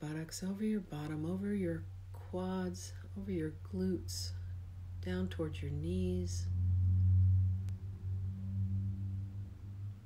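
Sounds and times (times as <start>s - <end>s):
low hum-like tone: 0.0s - 10.0s
faint overtone: 5.6s - 10.0s.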